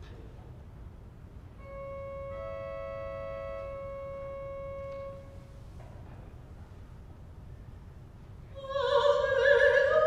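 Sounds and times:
pipe organ sustained chord: 0:01.6 - 0:05.7.

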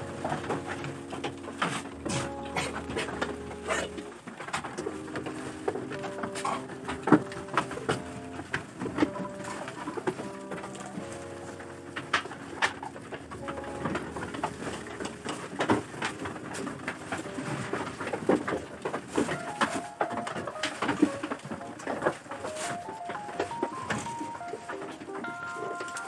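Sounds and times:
goats knocking and clattering: 0:00.0 - 0:26.0.

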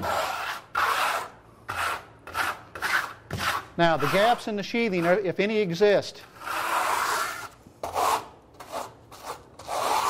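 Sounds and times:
trowel scraping wet coating: 0:00.0 - 0:05.2, 0:06.3 - 0:10.0.

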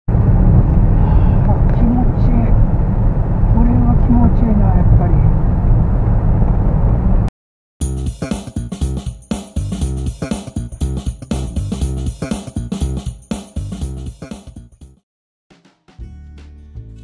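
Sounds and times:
road noise: 0:00.1 - 0:07.3
wind rumble on microphone: 0:00.1 - 0:07.3.

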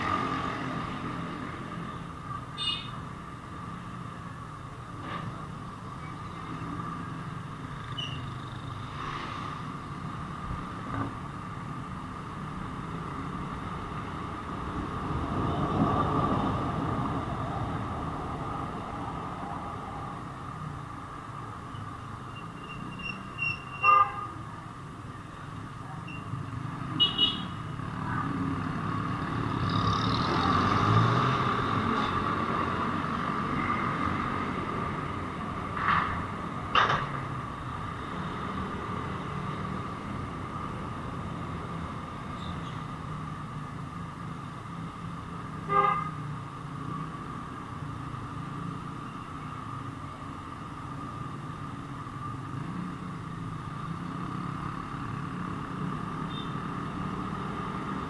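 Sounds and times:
motorcycle engine and road noise: 0:00.0 - 0:58.0
vehicle horn beeps: 0:02.6 - 0:03.0, 0:23.4 - 0:24.3.

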